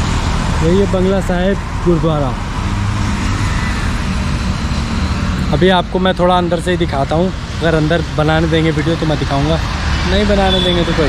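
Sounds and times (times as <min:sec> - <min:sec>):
cars passing close by: 0:00.0 - 0:11.0
road traffic: 0:00.0 - 0:11.0.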